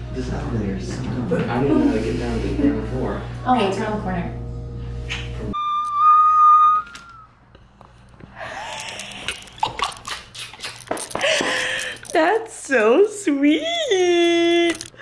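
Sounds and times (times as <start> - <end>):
woman squealing: 5.1 - 7.3
woman laughing breathlessly: 8.3 - 12.1.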